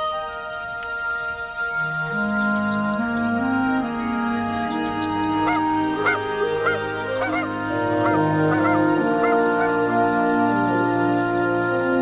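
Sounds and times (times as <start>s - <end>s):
gentle background music: 0.0s - 12.0s.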